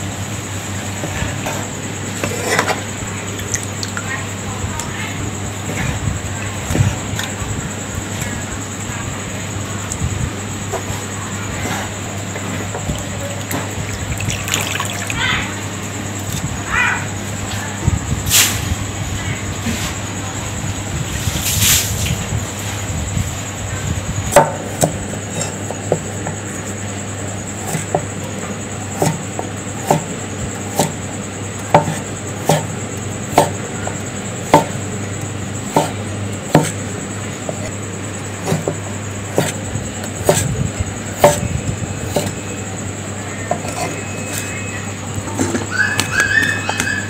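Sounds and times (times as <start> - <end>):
steady low hum: 0.0 - 47.0
water splashing in bowl: 3.3 - 4.1, 13.0 - 15.2
knife chopping on cutting board: 27.6 - 28.0, 29.0 - 29.2, 29.8 - 30.1, 30.7 - 31.0, 31.7 - 32.7, 33.3 - 33.6, 34.4 - 34.8, 35.7 - 36.8, 38.4 - 40.5, 41.2 - 41.4, 42.1 - 42.4.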